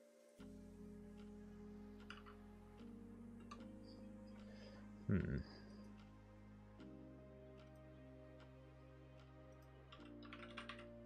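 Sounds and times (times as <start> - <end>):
quiet background music: 0.0 - 11.0
faint keyboard typing: 2.0 - 4.6, 9.2 - 11.0.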